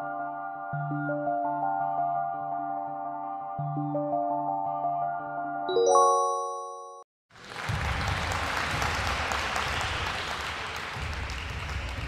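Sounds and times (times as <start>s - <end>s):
applause: 7.3s - 12.0s.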